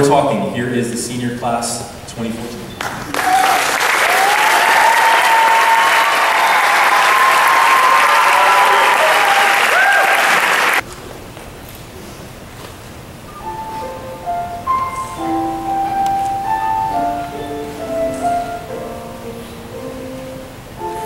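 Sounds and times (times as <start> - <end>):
audience applause: 2.8 - 10.8
shouts and whistles: 3.1 - 10.7
piano single notes: 13.3 - 21.0.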